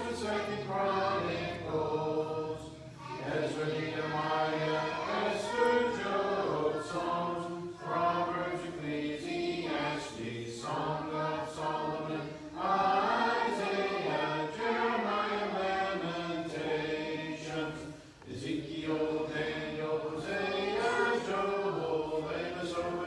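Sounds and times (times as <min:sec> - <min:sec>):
children chanting in unison: 0:00.0 - 0:23.0.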